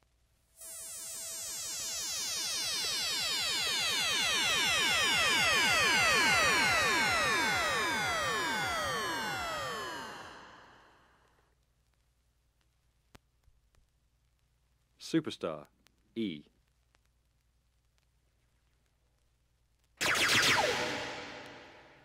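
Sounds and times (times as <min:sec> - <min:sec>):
synthesizer sweep gliding downward: 0:00.6 - 0:11.1, 0:20.0 - 0:22.0.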